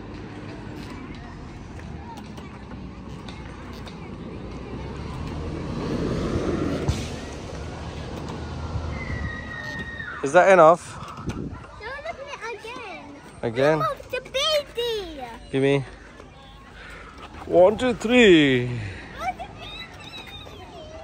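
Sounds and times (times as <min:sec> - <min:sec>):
faint voices: 0:00.0 - 0:08.7, 0:09.3 - 0:21.0
car passing on road: 0:04.4 - 0:11.0.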